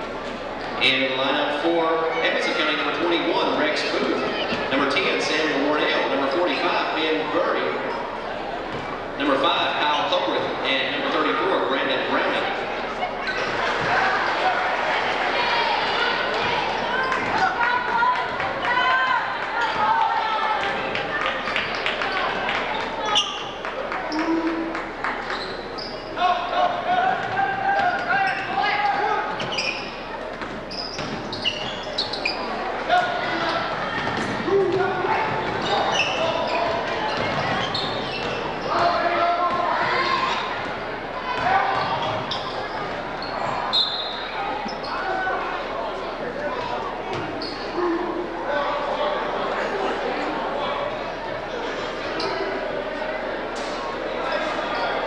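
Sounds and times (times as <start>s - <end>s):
people talking: 0.8s - 25.4s, 31.4s - 55.0s
shoe squeaks: 13.1s - 13.9s, 21.7s - 24.7s, 25.3s - 26.3s, 27.8s - 34.4s, 35.4s - 38.9s, 41.4s - 45.2s, 46.6s - 47.9s, 52.1s - 52.5s.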